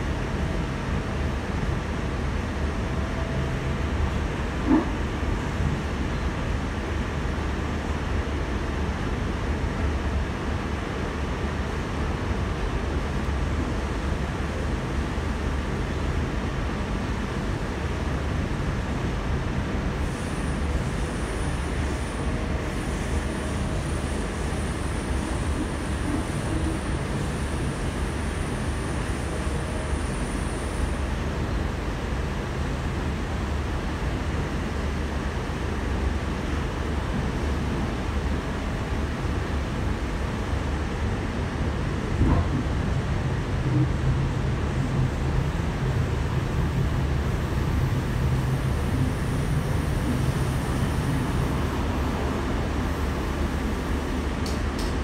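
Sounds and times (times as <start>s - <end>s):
train running rumble and rail noise: 0.0s - 55.0s.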